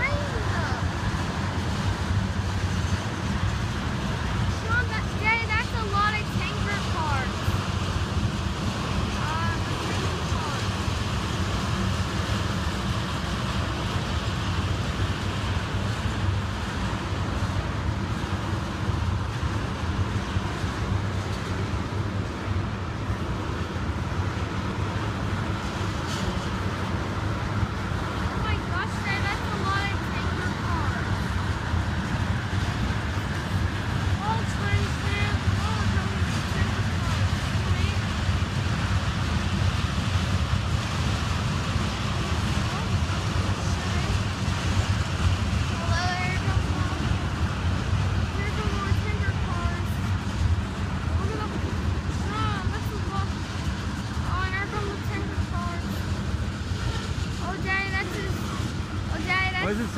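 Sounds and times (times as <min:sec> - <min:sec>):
train wheels rolling on rails: 0:00.0 - 0:59.9.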